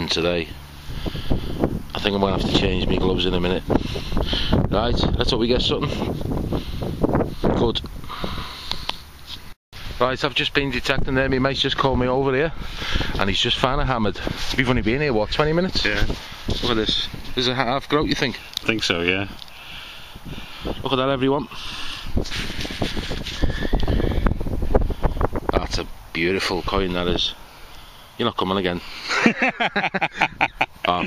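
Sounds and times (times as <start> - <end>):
wind on microphone: 0.8 - 8.9, 10.6 - 18.0, 19.2 - 26.9.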